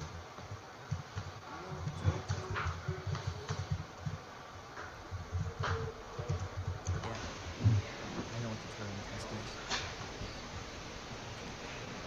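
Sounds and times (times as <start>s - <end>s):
computer keyboard typing: 5.1s - 7.2s.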